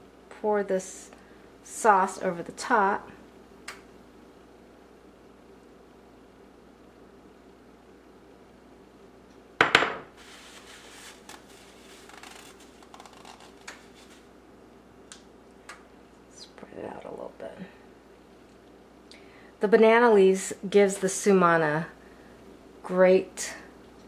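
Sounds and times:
glass dishware knock: 9.6s - 10.1s.

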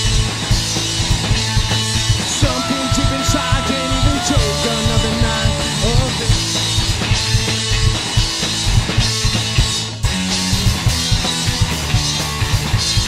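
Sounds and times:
bass guitar: 0.0s - 13.0s
drum kit: 0.0s - 13.0s
electric guitar: 0.0s - 13.0s.

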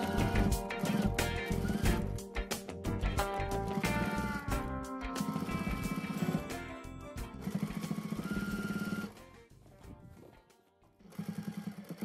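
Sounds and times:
sewing machine stitching: 0.0s - 2.2s, 3.7s - 4.5s, 5.2s - 6.7s, 7.4s - 9.3s, 11.0s - 12.0s
background music: 0.0s - 10.9s.

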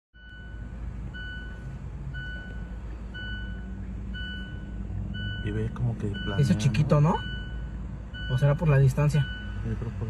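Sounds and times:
reversing alarm beeping: 0.2s - 9.7s
low engine rumble: 0.2s - 10.0s.

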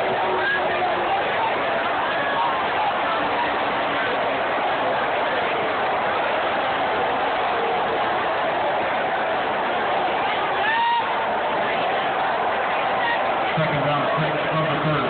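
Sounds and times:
stadium crowd chatter: 0.0s - 15.0s.

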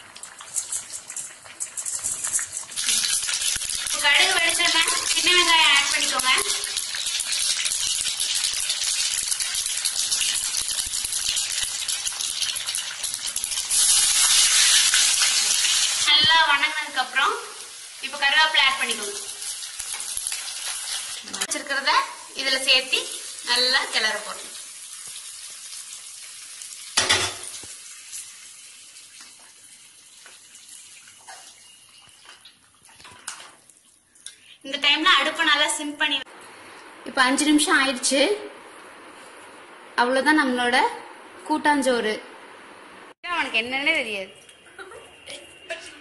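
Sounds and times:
oil sizzling in a pan: 0.0s - 32.8s
onions frying: 0.0s - 38.5s.

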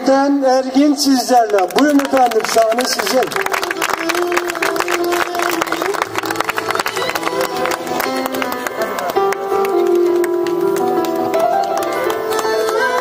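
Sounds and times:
electronic keyboard melody: 3.4s - 13.0s.

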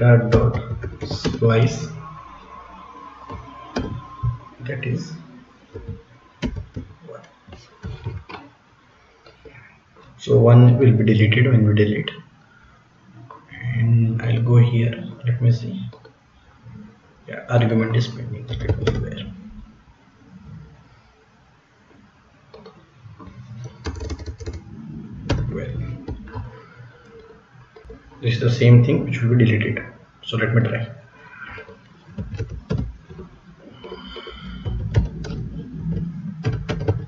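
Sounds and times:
computer keyboard typing: 0.3s - 1.9s, 23.6s - 24.6s, 31.5s - 37.0s
computer keyboard keystrokes: 23.8s - 24.6s.

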